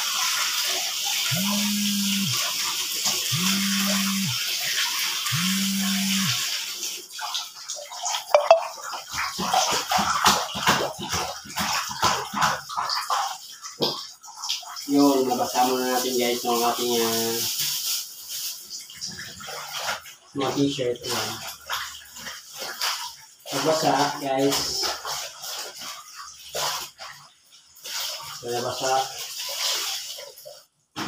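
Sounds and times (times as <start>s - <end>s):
splashing and sloshing water: 0.0s - 31.0s
tap water running into basin: 0.0s - 31.0s
low buzzes: 1.3s - 2.4s, 3.3s - 4.4s, 5.3s - 6.4s.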